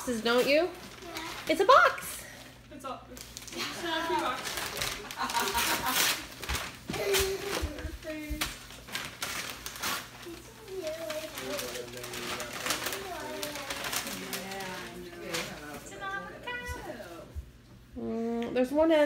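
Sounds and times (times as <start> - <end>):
wrapping paper rustling: 0.0 - 17.3
person humming: 18.0 - 18.5.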